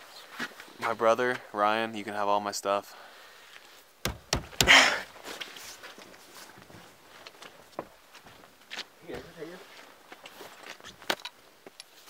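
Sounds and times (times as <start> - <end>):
handling clicks and knocks: 4.1 - 4.8.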